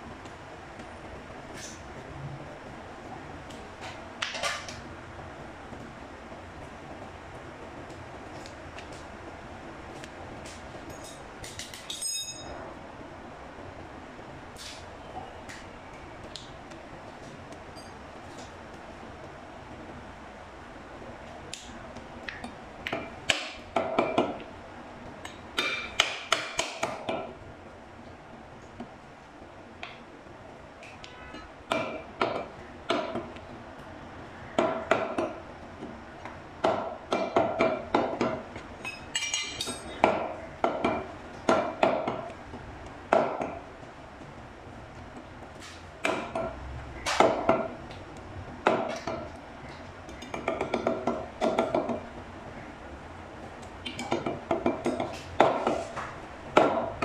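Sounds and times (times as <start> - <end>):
cleaver chopping on wooden block: 25.6 - 27.2.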